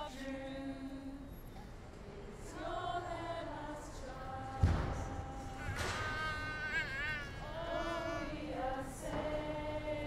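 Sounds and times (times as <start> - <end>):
protesters singing together: 2.1 - 10.0.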